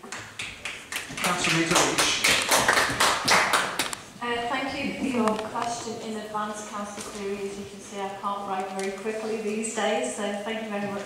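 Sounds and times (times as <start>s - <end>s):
crowd applauding: 0.0s - 4.0s.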